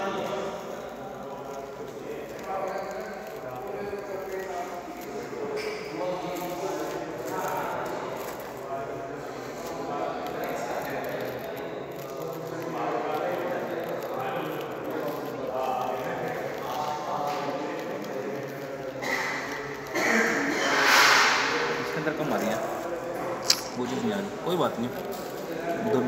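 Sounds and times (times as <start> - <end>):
people talking indistinctly: 0.0 - 26.0.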